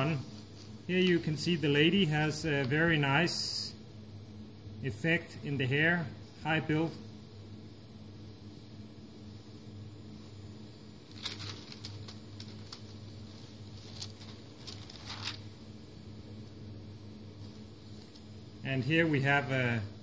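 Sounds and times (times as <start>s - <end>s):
steady low hum: 0.0s - 20.0s
paper pages rustling: 11.1s - 15.4s.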